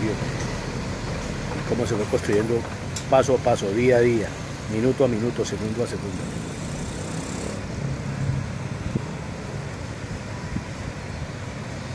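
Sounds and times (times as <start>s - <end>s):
street traffic rumble: 0.0s - 11.9s.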